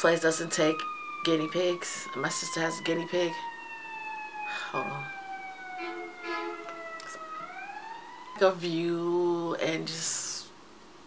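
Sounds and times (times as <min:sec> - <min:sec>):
emergency vehicle siren wailing: 0:00.0 - 0:09.3.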